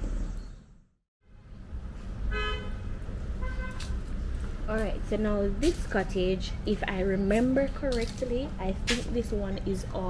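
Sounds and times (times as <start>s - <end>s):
vehicle horn toot: 2.3s - 2.8s, 3.4s - 3.9s.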